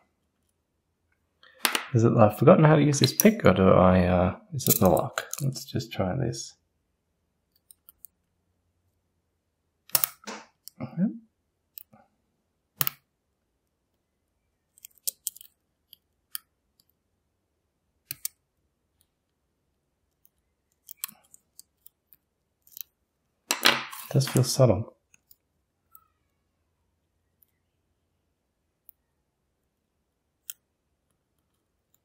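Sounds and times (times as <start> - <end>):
lock pick clicking and scraping: 9.9 - 10.8, 14.7 - 16.5, 20.2 - 22.9.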